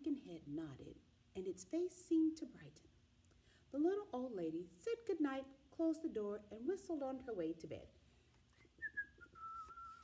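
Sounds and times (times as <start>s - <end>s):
woman whistling a tune: 8.7s - 10.0s.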